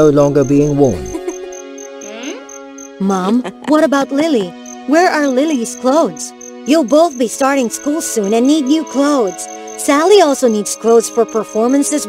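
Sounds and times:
crickets chirping: 0.0 - 12.0
soft background music: 0.0 - 12.0.

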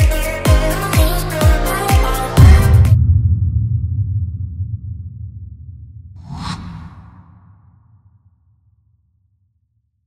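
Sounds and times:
low bass: 6.2 - 8.0
whoosh: 6.2 - 8.3.

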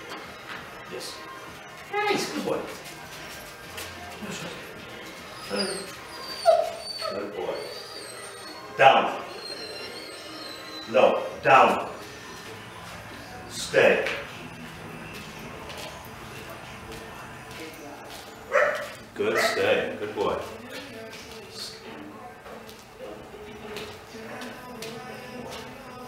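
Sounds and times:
dog crying: 5.2 - 11.4
dog whining: 5.2 - 11.4
dog barking: 18.5 - 19.7.

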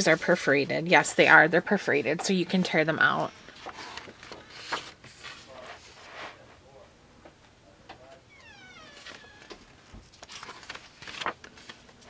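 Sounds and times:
paper pages turning: 3.5 - 6.4, 8.9 - 12.0.

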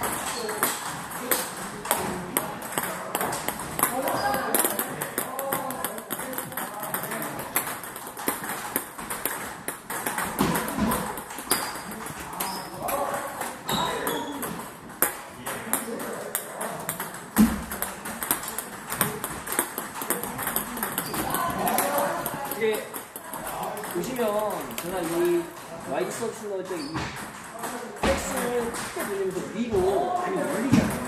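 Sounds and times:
people talking in a hall: 0.0 - 31.0
table tennis balls clicking: 0.0 - 31.0.

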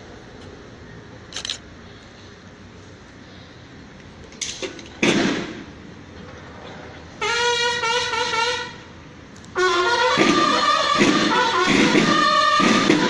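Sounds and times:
held horn note: 9.5 - 13.0
pitched horn-like sound: 9.5 - 13.0.

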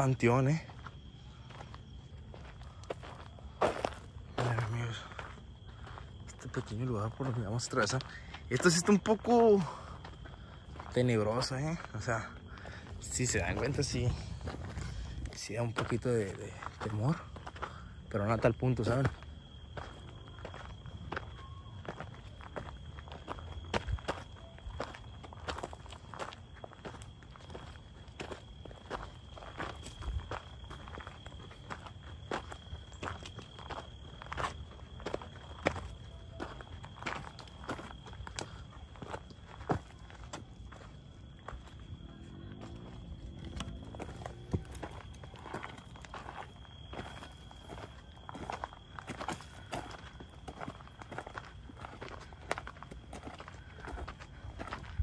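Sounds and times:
footsteps on dirt trail: 0.0 - 55.0.

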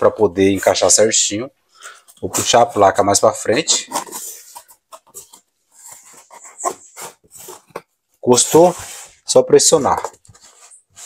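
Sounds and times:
styrofoam board squeaking and scraping: 3.7 - 11.0.

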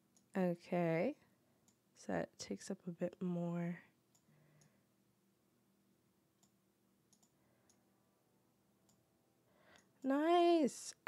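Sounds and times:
computer mouse clicks: 6.4 - 7.8.

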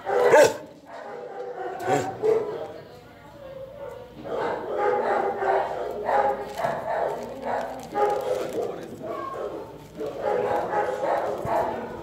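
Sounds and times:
dogs barking and yipping: 0.0 - 2.6, 4.0 - 12.0.

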